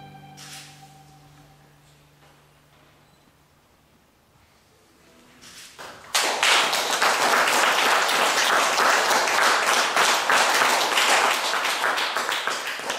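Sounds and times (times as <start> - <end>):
audience applauding: 5.8 - 12.9.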